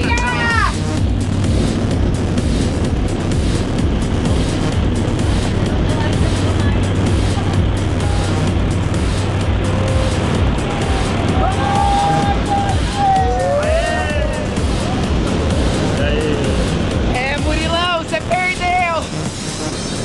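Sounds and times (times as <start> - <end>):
plane engine and propeller drone: 0.0 - 11.6, 14.2 - 20.0.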